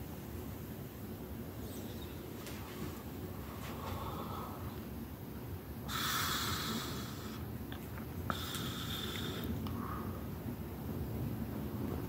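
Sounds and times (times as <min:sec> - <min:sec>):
breathy hiss through mask: 0:03.4 - 0:04.8, 0:05.8 - 0:07.5, 0:08.3 - 0:10.4.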